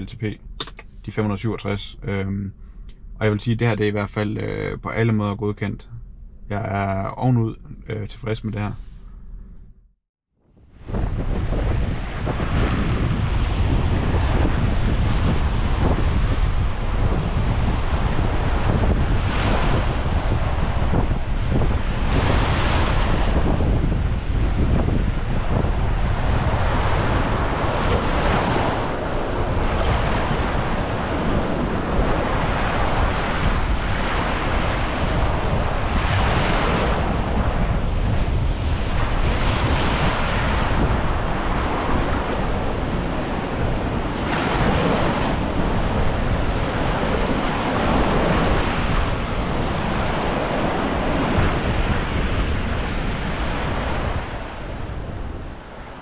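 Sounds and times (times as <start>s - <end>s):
wind buffeting microphone: 10.5s - 56.0s
sea surf washing onto beach: 10.8s - 56.0s.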